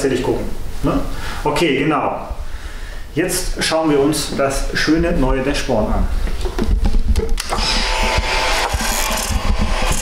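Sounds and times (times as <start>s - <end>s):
microphone handling noise: 6.1s - 7.4s.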